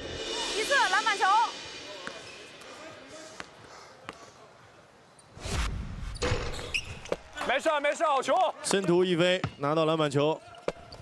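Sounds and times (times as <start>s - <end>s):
loud thud: 5.4s - 7.0s.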